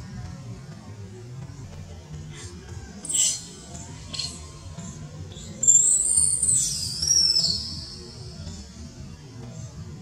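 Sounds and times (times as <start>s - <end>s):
background music: 0.0s - 10.0s
infant monkey squealing cry: 3.0s - 4.6s, 5.3s - 8.1s.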